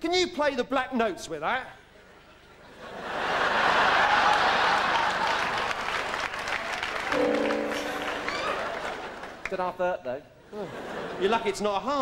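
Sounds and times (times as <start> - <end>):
audience laughing and applauding: 2.6 - 9.6
held musical chord: 7.1 - 9.2.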